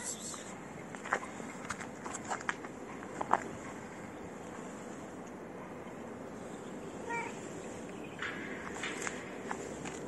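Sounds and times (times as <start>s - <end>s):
outdoor background noise: 0.0s - 10.0s
footsteps scuffing on ground: 0.9s - 3.5s.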